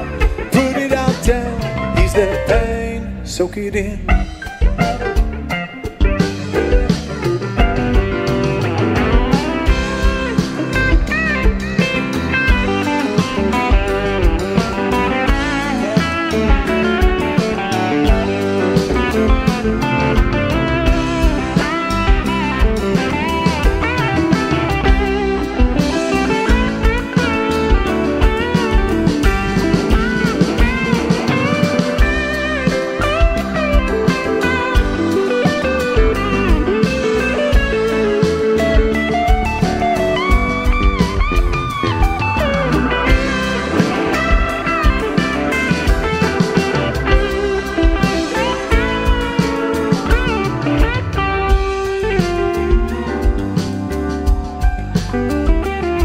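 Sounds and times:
electric guitar lead: 0.0 - 56.0
live rock band: 0.0 - 56.0.

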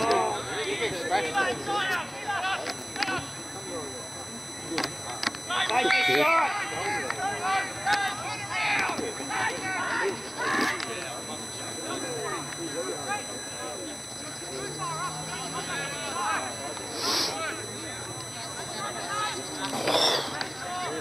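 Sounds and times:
voices shouting: 5.5 - 10.9.

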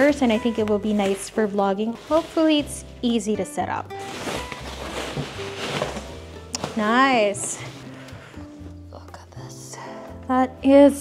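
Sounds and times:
plastic wrap crinkling: 0.0 - 8.0
background music: 0.0 - 11.0.

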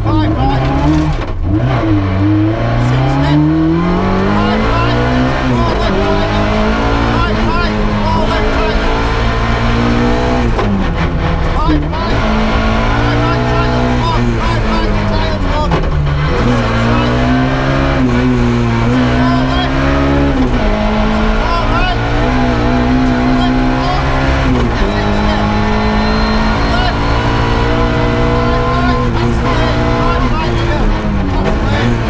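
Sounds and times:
car engine from inside cabin: 0.0 - 32.0.

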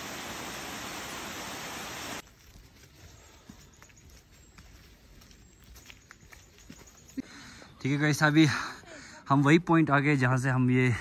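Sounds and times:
footsteps on forest trail: 2.2 - 7.6.

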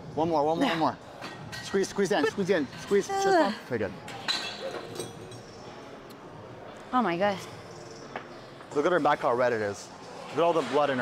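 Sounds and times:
gym background noise: 0.0 - 11.0.

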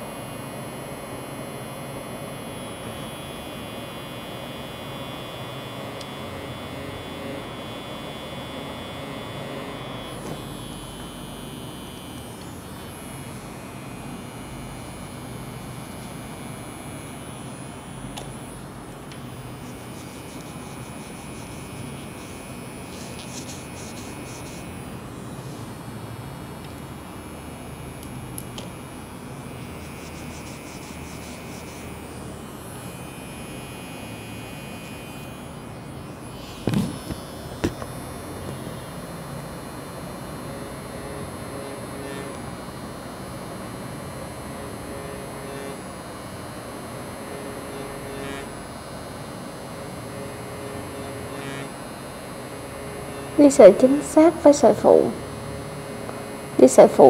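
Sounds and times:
faint hum: 0.0 - 57.0.

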